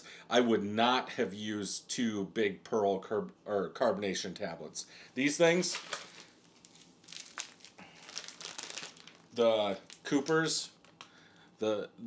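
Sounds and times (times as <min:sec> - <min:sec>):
plastic packet crinkling: 0:05.2 - 0:11.2.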